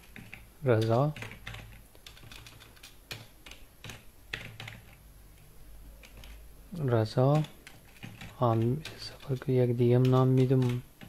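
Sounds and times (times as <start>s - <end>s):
computer keyboard keys clicking: 0.0s - 5.0s, 6.0s - 6.4s, 7.3s - 11.0s.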